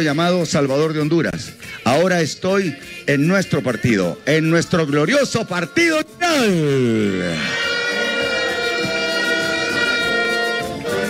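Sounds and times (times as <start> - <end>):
multi-tone horn blast: 6.4 - 11.0.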